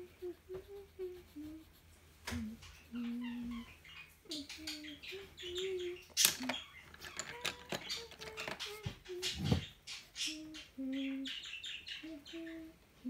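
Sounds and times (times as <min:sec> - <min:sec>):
person softly humming: 0:00.0 - 0:03.6, 0:04.3 - 0:06.0, 0:10.2 - 0:11.4, 0:12.0 - 0:13.0.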